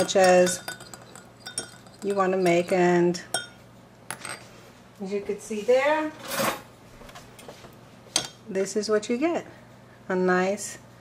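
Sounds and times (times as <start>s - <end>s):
metal utensil scraping glass bowls: 0.0s - 3.6s.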